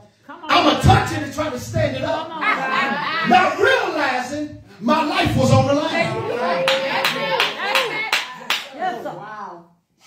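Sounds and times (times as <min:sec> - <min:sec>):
sharp handclaps: 0:06.7 - 0:08.8.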